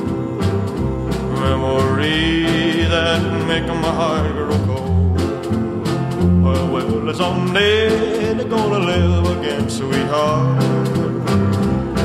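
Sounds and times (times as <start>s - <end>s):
bass line: 0.0s - 12.0s
country song: 0.0s - 12.0s
guitar: 0.0s - 12.0s
person singing: 0.0s - 12.0s.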